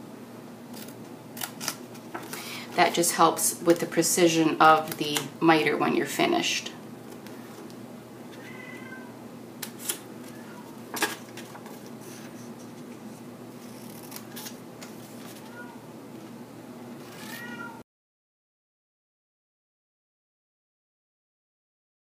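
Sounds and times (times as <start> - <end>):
cat meowing: 8.4 - 9.2, 10.3 - 10.8, 15.5 - 15.9, 17.1 - 17.8
scissors snipping cardstock: 13.6 - 14.9.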